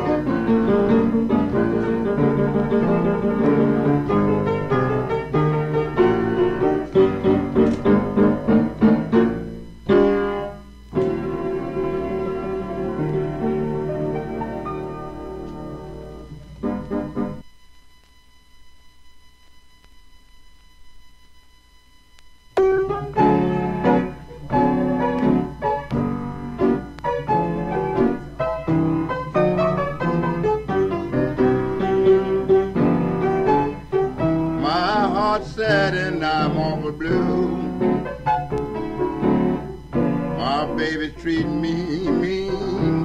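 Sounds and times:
solo blues piano: 0.0 - 17.4, 22.6 - 43.0.

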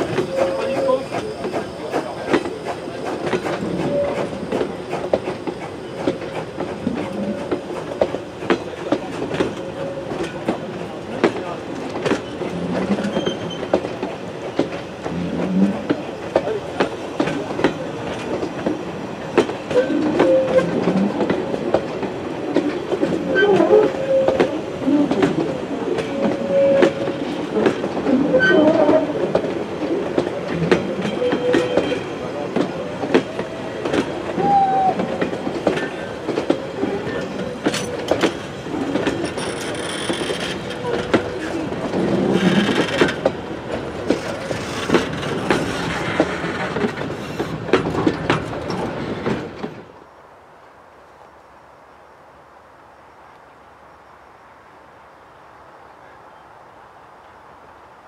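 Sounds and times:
train wheels squealing: 0.0 - 8.0, 12.2 - 13.8, 19.7 - 20.8, 28.2 - 29.1, 30.8 - 32.3, 39.1 - 41.6
train wheels clicking over rail joints: 0.0 - 49.9.

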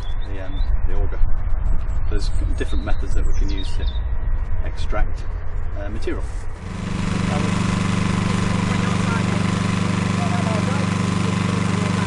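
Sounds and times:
drilling rig engine idling: 6.5 - 12.0.

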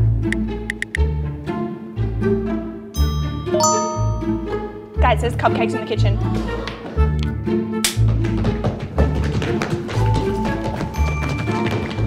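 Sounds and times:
background music: 0.0 - 12.0
two-note notification chime: 3.3 - 4.7.

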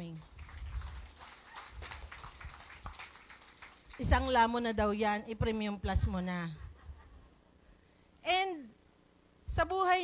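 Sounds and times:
audience rustling: 0.2 - 4.0.

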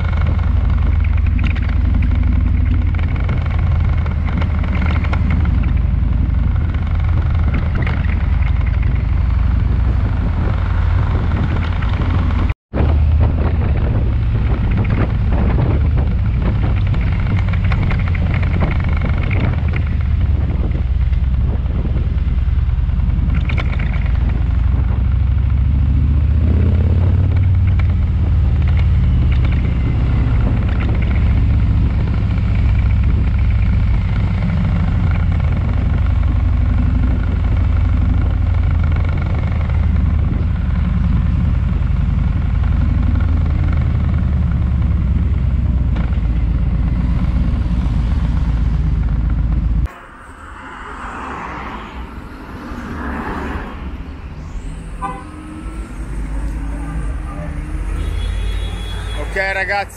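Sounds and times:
motorcycle engine rumbling: 0.0 - 59.9
street traffic: 0.0 - 59.9.

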